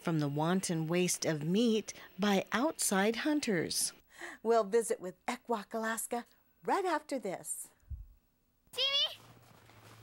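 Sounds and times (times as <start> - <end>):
child's high-pitched rising call: 8.8 - 9.2.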